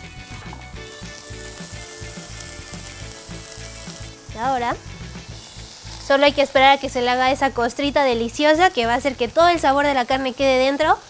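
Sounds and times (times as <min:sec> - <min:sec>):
meat sizzling in a frying pan: 0:00.0 - 0:11.0.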